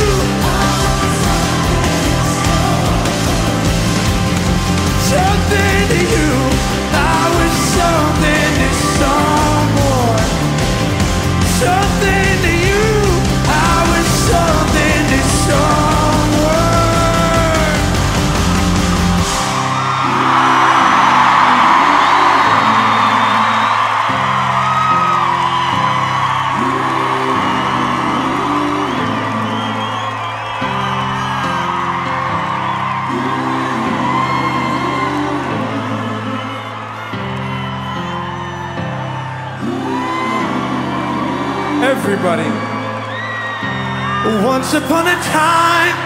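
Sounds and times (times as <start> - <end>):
concert crowd cheering: 0.0 - 46.0
live band playing chords: 0.0 - 46.0.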